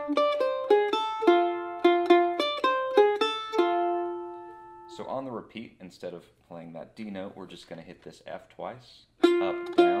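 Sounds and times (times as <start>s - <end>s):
mandolin picked with a flatpick: 0.0s - 5.0s, 9.2s - 10.0s.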